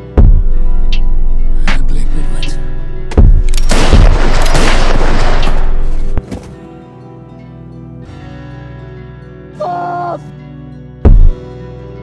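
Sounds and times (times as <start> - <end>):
gunfire sound effect: 3.2 - 6.2
heavy booms: 3.2 - 6.2.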